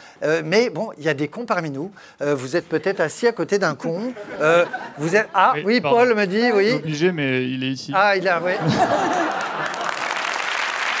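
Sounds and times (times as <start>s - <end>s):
audience laughing: 3.9s - 6.8s, 8.2s - 10.2s
audience clapping: 8.8s - 11.0s.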